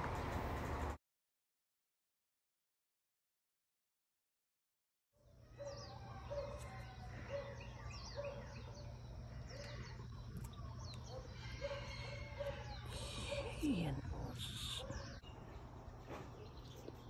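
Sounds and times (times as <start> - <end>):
birds chirping: 5.2 - 17.0.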